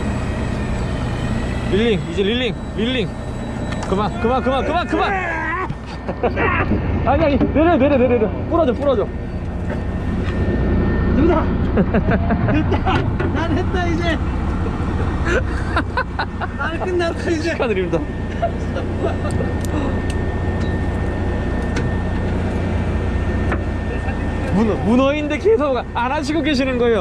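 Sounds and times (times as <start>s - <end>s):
boat engine rumbling: 0.0s - 27.0s
thin steady whine: 0.0s - 27.0s
person laughing: 5.8s - 6.7s, 7.7s - 8.3s, 11.7s - 13.2s, 14.6s - 16.9s, 18.3s - 20.0s.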